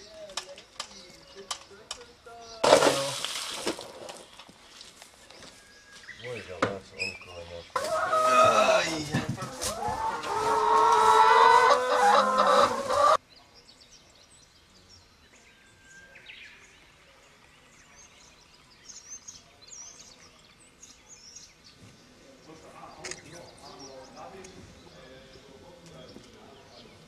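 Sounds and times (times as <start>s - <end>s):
chickens clucking and squawking: 7.8s - 13.2s.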